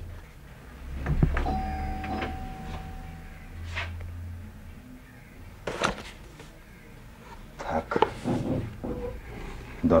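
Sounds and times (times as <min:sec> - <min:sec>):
low room rumble: 0:00.0 - 0:10.0
faint steady tone: 0:01.4 - 0:03.6.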